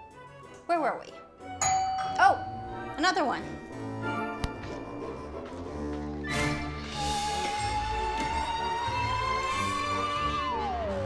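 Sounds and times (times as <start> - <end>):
doorbell chime: 1.6 - 5.6.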